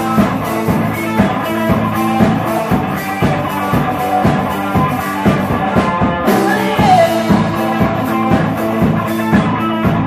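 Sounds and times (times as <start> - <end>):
bass guitar: 0.0 - 10.0
drum kit: 0.0 - 10.0
electric guitar: 0.0 - 10.0.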